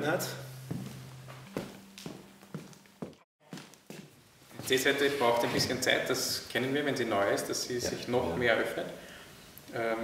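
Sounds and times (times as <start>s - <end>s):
faint footsteps on wooden floor: 0.6s - 4.8s.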